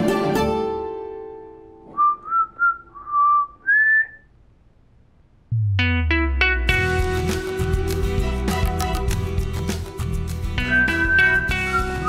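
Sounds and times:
man whistling: 1.9 - 4.3, 10.6 - 12.0.

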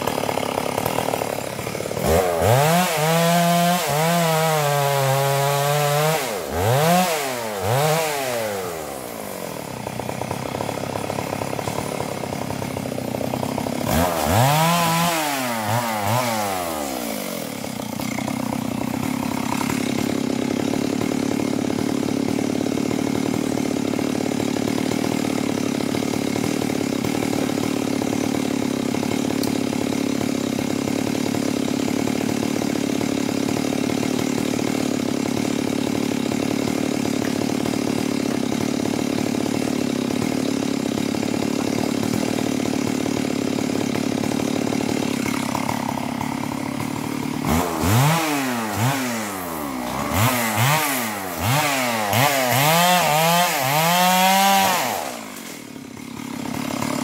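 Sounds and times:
chainsaw running and revving: 0.0 - 57.0.

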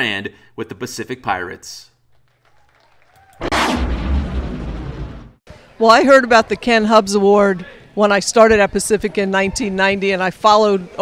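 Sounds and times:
deep impact hit: 3.4 - 5.4.

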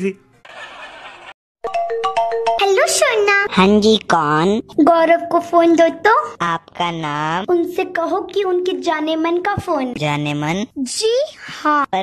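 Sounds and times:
phone ringtone melody: 1.6 - 3.1.

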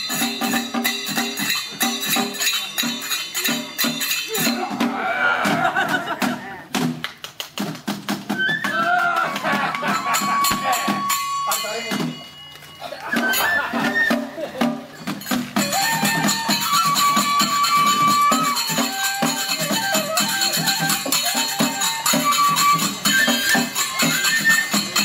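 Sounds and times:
small cymbals: 0.0 - 5.0, 9.8 - 25.0
bamboo flutes melody: 0.0 - 6.8, 8.0 - 25.0
drum beats: 0.0 - 25.0.

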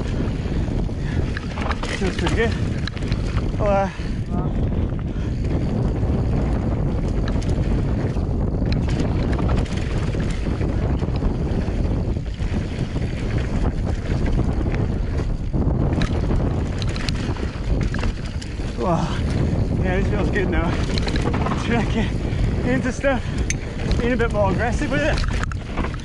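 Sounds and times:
bike clicks and rattles: 0.0 - 26.0
tyres rolling on dirt trail: 0.0 - 26.0
wind rushing over microphone: 0.0 - 26.0.

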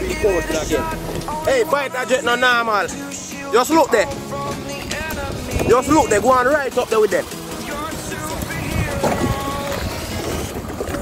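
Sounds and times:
water lapping against boat hull: 0.0 - 1.6, 2.3 - 11.0
wind on microphone: 4.8 - 6.5, 7.7 - 11.0.

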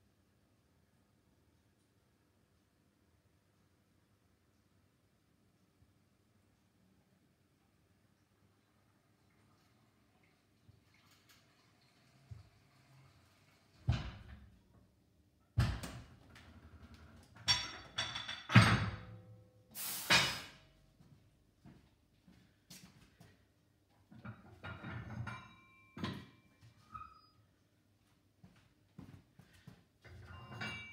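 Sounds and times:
hydraulic hiss: 19.8 - 20.6.

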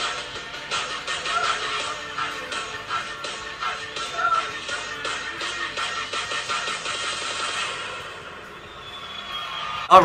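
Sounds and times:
dance music with faint beat: 0.0 - 8.5.

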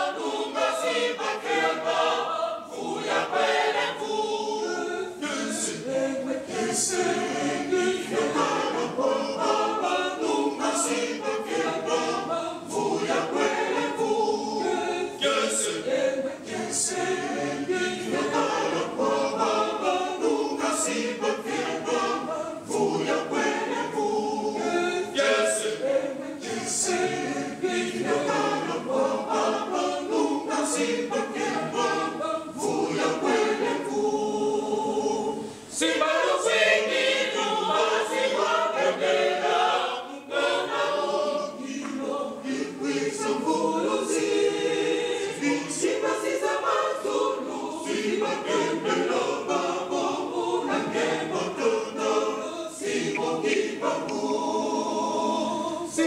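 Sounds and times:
mixed choir singing a cappella: 0.0 - 56.0.

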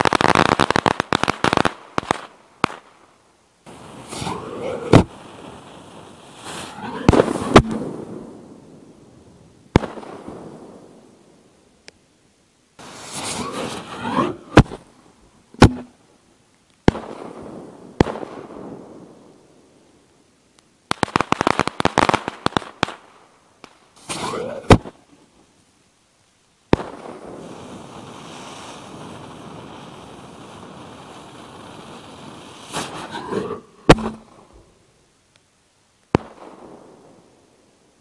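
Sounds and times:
crackling firework stars: 0.0 - 38.0
firework hissing: 3.6 - 8.5, 12.8 - 14.9, 24.0 - 24.9, 27.4 - 34.8
firework shell bursts with echo: 33.9 - 34.4.

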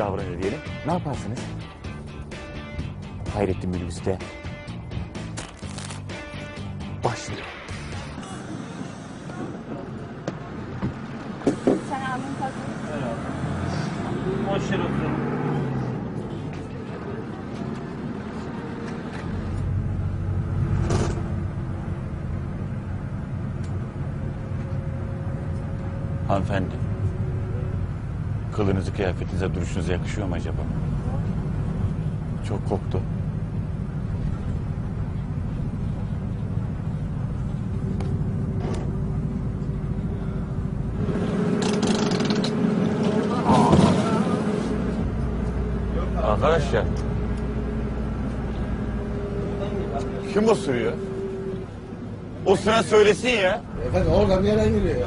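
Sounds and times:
minibus engine and road rumble: 0.0 - 55.0.

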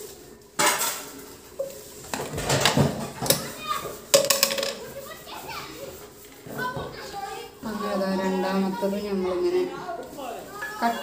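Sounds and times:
children chattering: 3.2 - 4.1, 4.7 - 11.0.

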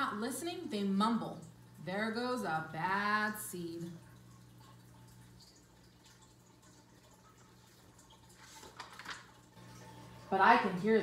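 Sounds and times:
faint steady hum: 0.0 - 11.0
book page turning: 8.4 - 9.4.

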